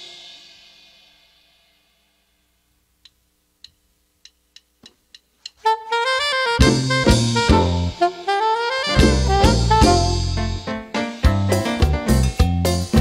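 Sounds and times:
sharp count-in clicks: 3.0 - 5.6
saxophone: 5.6 - 10.7
dance band playing: 5.6 - 13.0.

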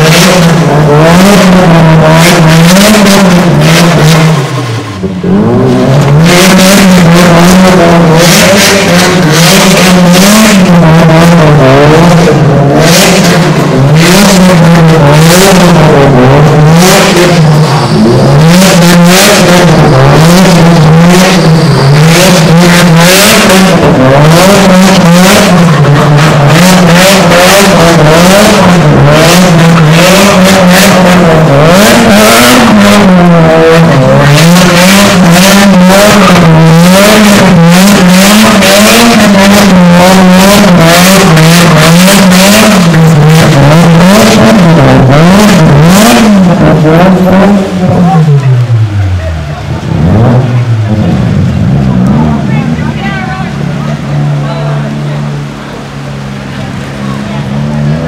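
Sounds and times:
car engine idling: 0.0 - 58.0
car engine revving: 0.0 - 58.0.

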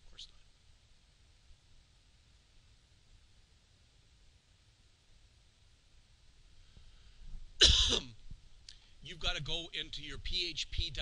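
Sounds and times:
man coughing: 7.6 - 8.2.

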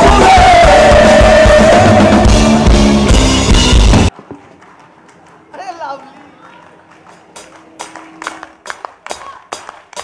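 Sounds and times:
hand claps in steady beat: 6.9 - 10.0.

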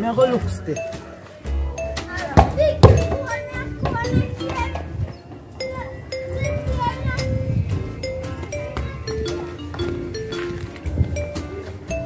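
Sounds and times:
background music with held notes: 0.0 - 12.0
children calling: 0.0 - 12.0.

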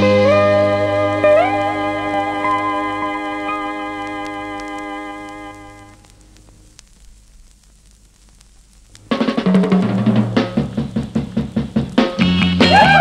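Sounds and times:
drum kit: 8.8 - 13.0
pop band playing: 9.1 - 13.0.

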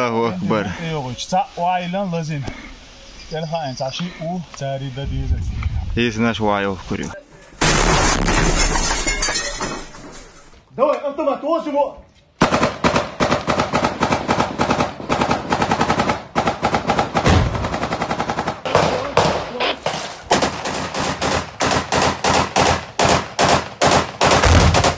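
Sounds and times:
automatic rifle fire: 20.3 - 24.9.

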